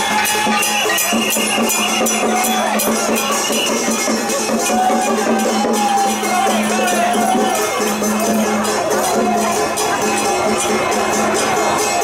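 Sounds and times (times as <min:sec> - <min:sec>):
steady percussion beat: 0:00.0 - 0:12.0.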